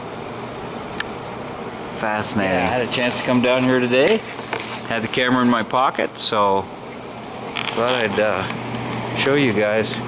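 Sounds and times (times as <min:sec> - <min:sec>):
machinery hum: 0:00.0 - 0:10.0.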